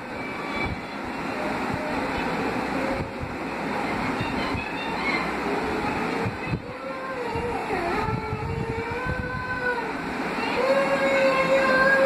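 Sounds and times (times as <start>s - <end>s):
person singing long notes: 6.6s - 12.0s.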